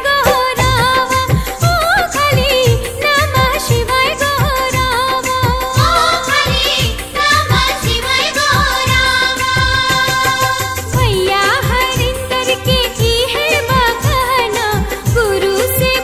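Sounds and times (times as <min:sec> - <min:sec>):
steady drum beat: 0:00.0 - 0:15.3
devotional song with vocals: 0:00.0 - 0:16.0.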